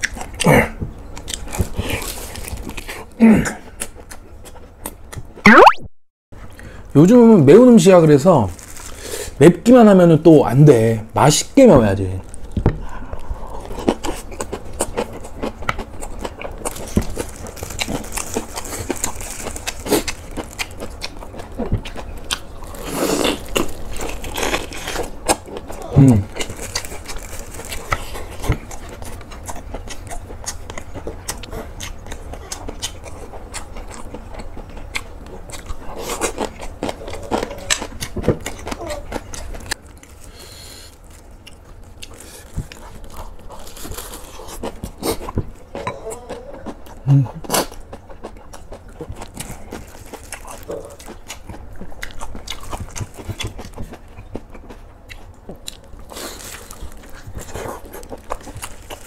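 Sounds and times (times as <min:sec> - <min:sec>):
chewing and crunching: 0:00.0 - 0:05.4, 0:12.2 - 0:59.0
wet mouth sounds: 0:05.2 - 0:06.0.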